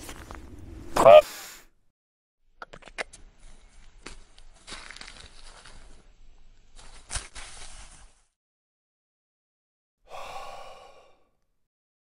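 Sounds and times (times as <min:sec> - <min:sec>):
man sighing exhale: 0:10.1 - 0:11.4.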